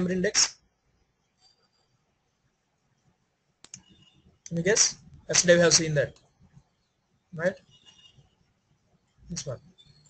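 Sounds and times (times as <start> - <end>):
computer mouse clicks: 3.6 - 5.2.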